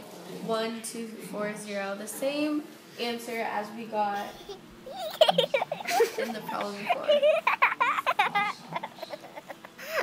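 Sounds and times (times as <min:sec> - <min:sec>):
young woman giggling: 0:04.2 - 0:10.0.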